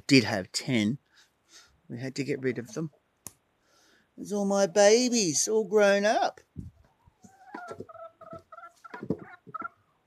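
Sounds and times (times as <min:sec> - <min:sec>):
chickens clucking: 0:06.6 - 0:10.0.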